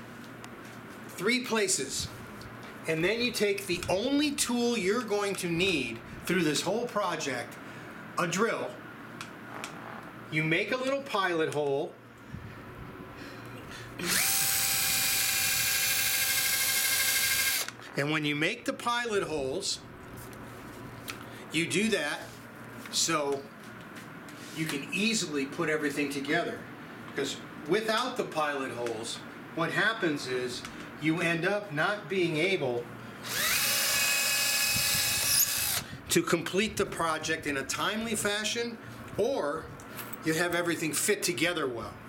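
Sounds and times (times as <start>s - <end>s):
cordless drill whining: 14.0s - 17.8s, 33.2s - 35.9s.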